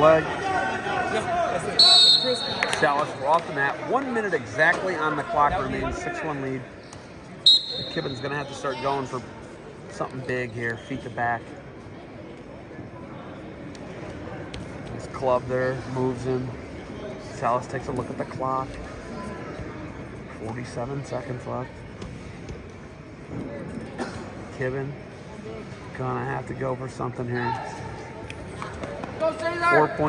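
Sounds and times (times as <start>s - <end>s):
referee's whistle blown: 1.8s - 2.7s, 7.4s - 8.5s.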